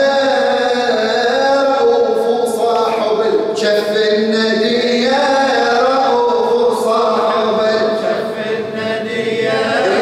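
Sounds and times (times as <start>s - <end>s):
person chanting devotionally: 0.0s - 10.0s.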